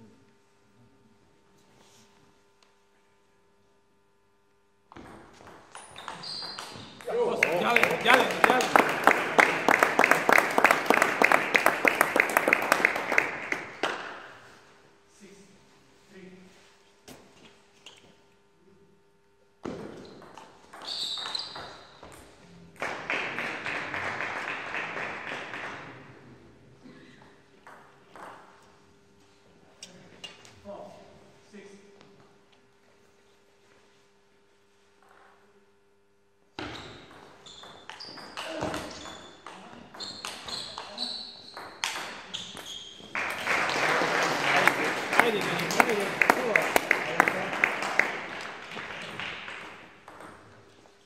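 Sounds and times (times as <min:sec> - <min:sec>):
spectators applauding: 0:07.0 - 0:14.2, 0:22.8 - 0:26.0, 0:43.1 - 0:50.0.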